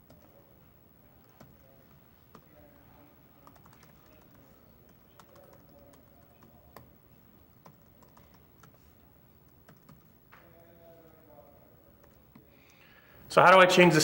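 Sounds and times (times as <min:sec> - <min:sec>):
keyboard typing: 0:00.0 - 0:00.5, 0:01.1 - 0:11.2, 0:12.0 - 0:12.8.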